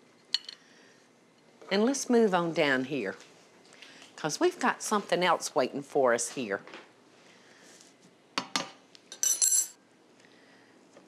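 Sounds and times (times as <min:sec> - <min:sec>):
plate and cutlery clinking: 0:09.1 - 0:09.8.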